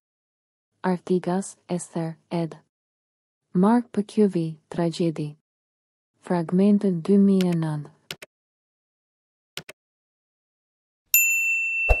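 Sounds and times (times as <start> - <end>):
notification bell ding: 11.2 - 12.0.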